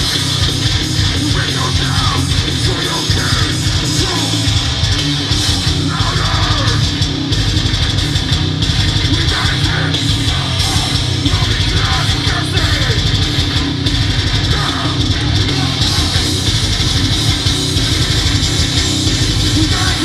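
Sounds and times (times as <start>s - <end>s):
distorted electric guitar: 0.0s - 20.0s
drum kit: 0.0s - 20.0s.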